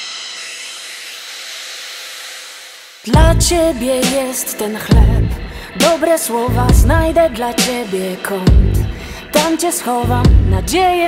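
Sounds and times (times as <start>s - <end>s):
synthesized noise wash: 0.0s - 9.5s.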